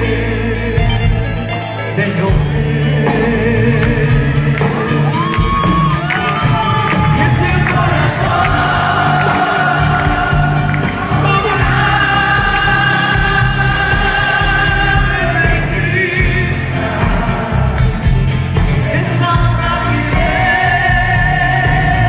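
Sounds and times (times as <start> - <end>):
folk band playing live: 0.0 - 22.0
guitars: 0.0 - 22.0
voices singing: 2.2 - 22.0
audience shouting and cheering: 3.8 - 22.0.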